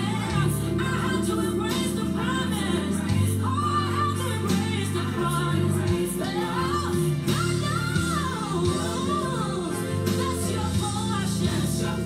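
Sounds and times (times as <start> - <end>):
band accompaniment: 0.0 - 12.0
woman singing gospel song: 0.0 - 12.0.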